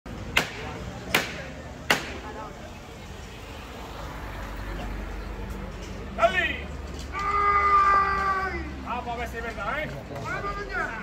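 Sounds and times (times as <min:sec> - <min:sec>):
low crowd chatter: 0:00.1 - 0:11.0.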